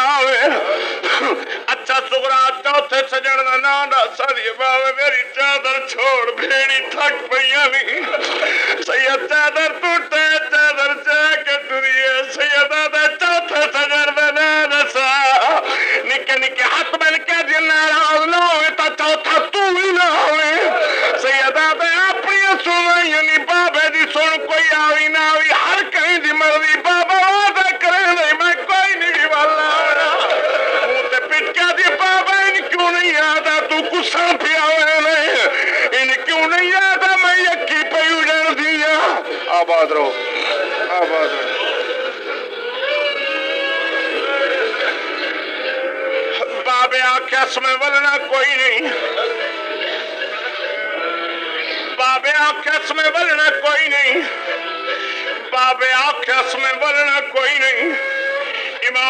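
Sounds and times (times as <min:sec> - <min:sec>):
man chanting a mourning recitation: 0:00.0 - 0:41.8, 0:52.0 - 0:59.0
overlapping voices: 0:00.0 - 0:59.0.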